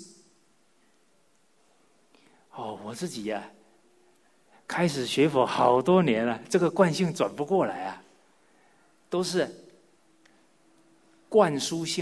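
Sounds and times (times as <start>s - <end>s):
man speaking: 2.5s - 3.7s, 4.6s - 8.2s, 9.1s - 9.7s, 11.3s - 12.0s.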